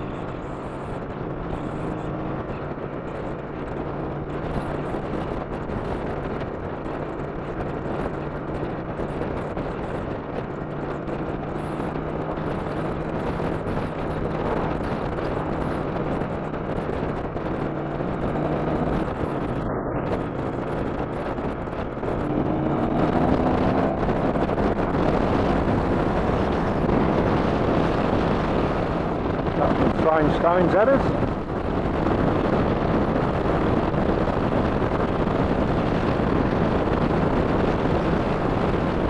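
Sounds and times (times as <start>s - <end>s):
motorcycle engine running: 0.0s - 39.0s
wind rushing over microphone: 0.0s - 39.0s.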